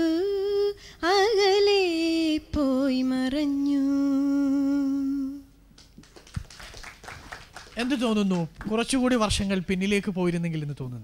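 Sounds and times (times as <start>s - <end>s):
woman singing unaccompanied: 0.0s - 5.6s.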